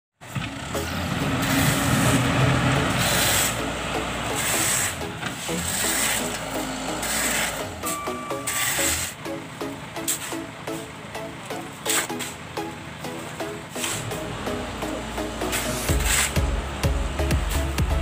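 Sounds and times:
diesel engine running: 0.2 - 18.0
background music: 0.5 - 18.0.

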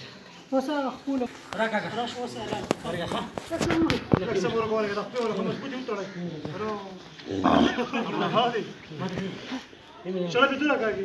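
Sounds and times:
men's voices: 1.1 - 11.0.

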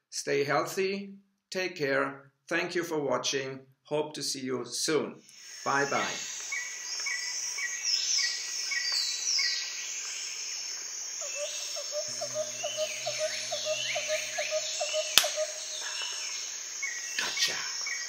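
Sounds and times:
insect drone: 5.3 - 18.0
bird repeating a note: 11.2 - 16.2
birds whistling and chirping: 11.2 - 18.0
sharp click: 15.2 - 15.4.

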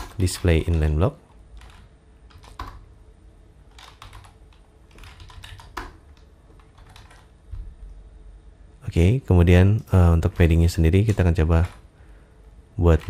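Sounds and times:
computer keyboard typing: 0.0 - 2.9, 3.7 - 7.4, 10.2 - 11.9.

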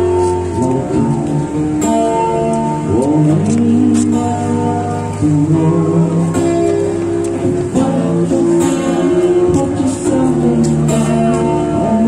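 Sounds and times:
acoustic guitar: 0.0 - 12.0
person singing: 2.8 - 12.0.

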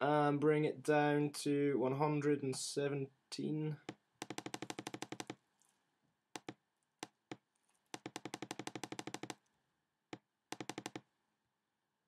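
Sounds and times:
computer mouse clicking: 4.2 - 5.4, 6.4 - 9.5, 10.1 - 11.0.

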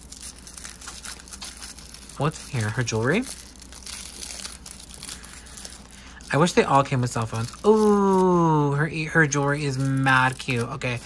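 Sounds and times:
tissue paper crinkling: 0.0 - 11.0.

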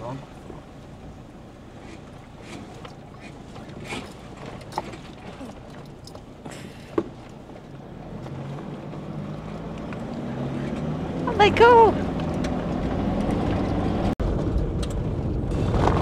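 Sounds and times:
vehicle cabin rumble: 0.0 - 16.0
knocks and rattles: 1.8 - 8.6.

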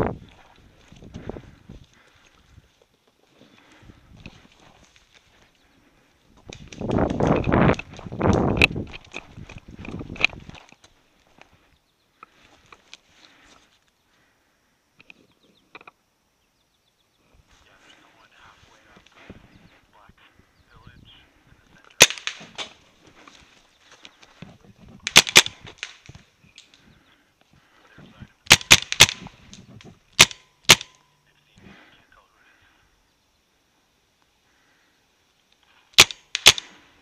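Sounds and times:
faint rustling of movement: 0.0 - 15.9, 17.2 - 28.4
paintball markers firing: 22.0 - 22.8, 25.1 - 26.1, 28.5 - 29.4, 30.2 - 31.0, 36.0 - 36.8.

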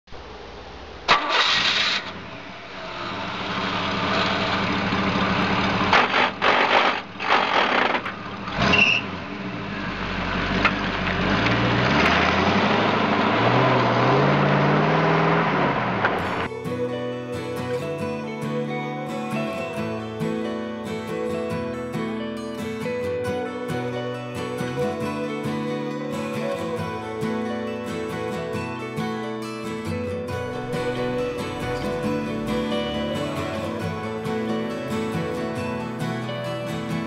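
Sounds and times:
engine starting and revving: 1.1 - 16.5
acoustic guitar music: 13.0 - 37.0.

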